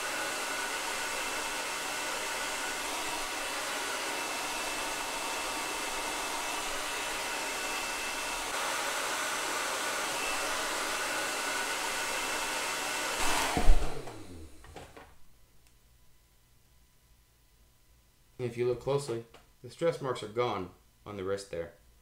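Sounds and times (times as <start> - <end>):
hair dryer blowing: 0.0 - 15.0
loud thump: 13.2 - 14.2.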